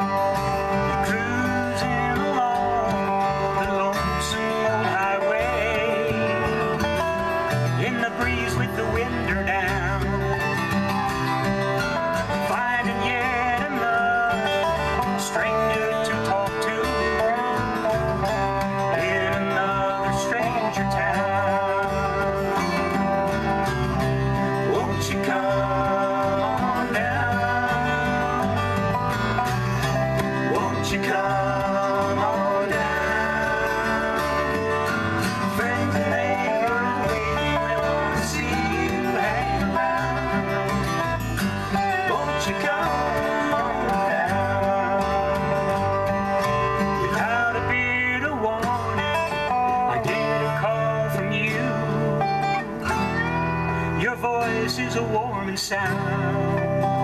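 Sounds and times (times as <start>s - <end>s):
electric bass: 0.0s - 57.0s
slide resonator guitar: 0.0s - 57.0s
strummed acoustic guitar: 0.0s - 57.0s.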